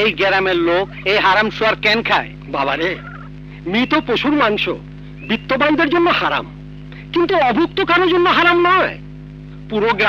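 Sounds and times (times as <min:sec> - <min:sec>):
man speaking: 0:00.0 - 0:09.0, 0:09.7 - 0:10.0
steady low hum: 0:00.0 - 0:10.0.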